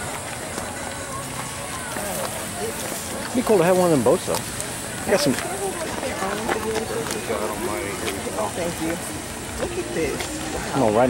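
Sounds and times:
faint indistinct voices: 0.0s - 11.0s
steady outdoor hiss: 0.0s - 11.0s.

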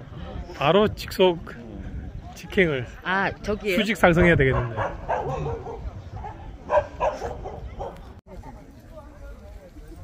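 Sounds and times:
murmur of voices: 0.0s - 10.0s
dog barking: 4.5s - 8.1s.

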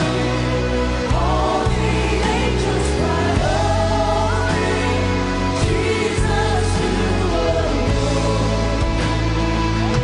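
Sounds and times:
singers with choir: 0.0s - 9.6s
worship band playing: 0.0s - 10.0s.

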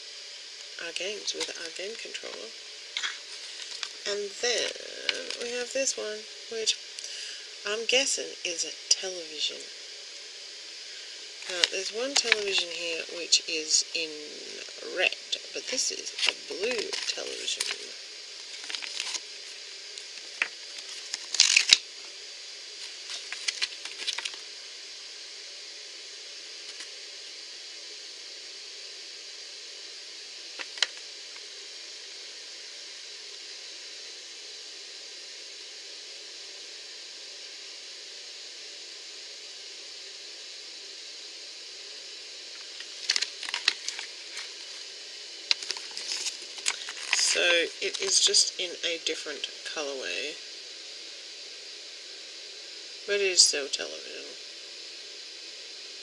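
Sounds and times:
steady hiss: 0.0s - 56.0s
paper leaflet crackling and rustling: 3.0s - 4.0s, 11.4s - 12.8s, 16.1s - 21.8s, 22.8s - 24.4s, 42.6s - 44.9s, 45.5s - 48.2s.

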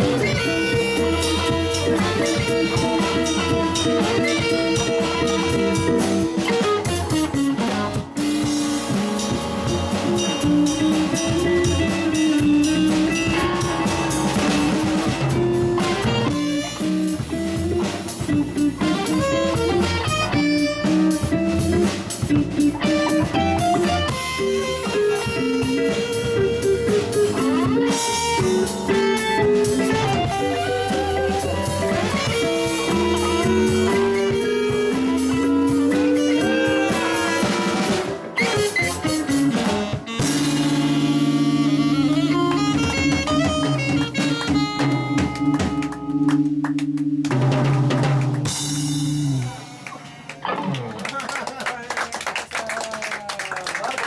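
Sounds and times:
alto saxophone: 0.0s - 49.8s
drum kit: 0.0s - 51.0s
electric guitar: 0.0s - 51.5s
bass: 0.0s - 54.0s.

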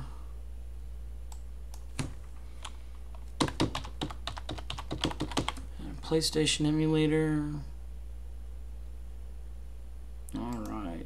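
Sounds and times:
steady low hum: 0.0s - 11.0s
computer keyboard typing: 1.3s - 5.7s.

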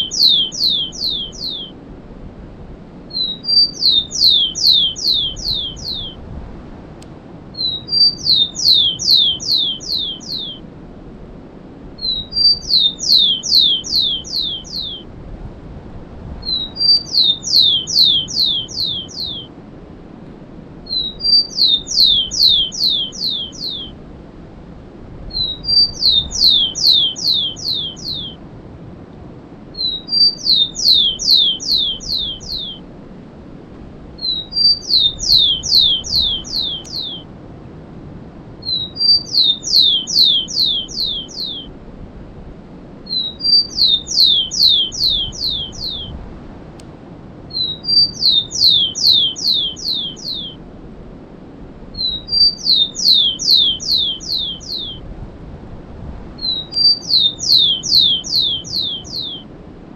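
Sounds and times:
sparrow singing: 0.0s - 1.8s, 3.1s - 6.2s, 7.6s - 10.7s, 12.0s - 15.1s, 16.4s - 19.5s, 20.8s - 24.0s, 25.3s - 28.4s, 29.7s - 32.8s, 34.2s - 37.3s, 38.6s - 41.7s, 43.1s - 46.2s, 47.5s - 50.6s, 51.9s - 55.0s, 56.4s - 59.4s
faint steady hiss: 0.0s - 59.9s.

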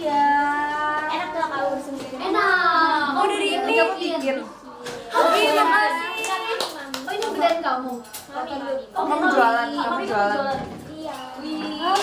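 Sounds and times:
young women talking: 0.0s - 12.0s.

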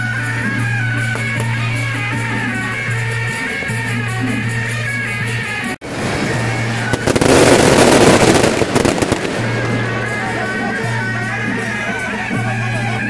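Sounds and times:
procession music: 0.0s - 13.0s
firecrackers crackling: 5.8s - 11.6s.

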